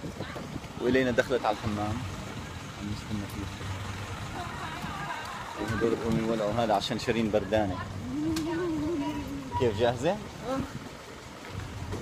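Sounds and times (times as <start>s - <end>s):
distant voices: 0.0s - 12.0s
low steady rumble: 0.0s - 12.0s.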